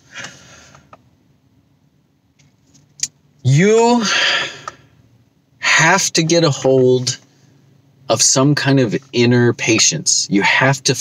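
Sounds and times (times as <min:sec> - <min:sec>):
faint low car cabin hum: 0:00.0 - 0:11.0.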